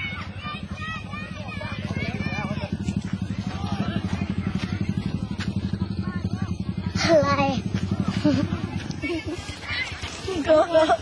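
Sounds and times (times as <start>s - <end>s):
people talking faintly: 0.0s - 11.0s
small engine running: 0.0s - 11.0s.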